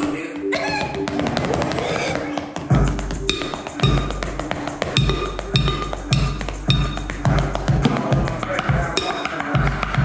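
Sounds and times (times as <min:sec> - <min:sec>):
hip-hop backing track: 0:00.0 - 0:10.0
drumsticks striking box drum: 0:03.1 - 0:09.4.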